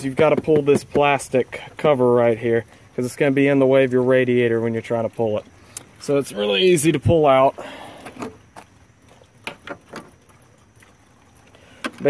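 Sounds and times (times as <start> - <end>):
low hiss: 0.0 - 12.0.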